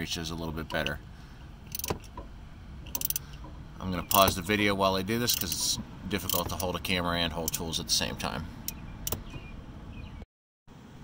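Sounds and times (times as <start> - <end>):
socket wrench clicking: 1.7 - 4.4, 5.3 - 6.8, 8.7 - 9.3.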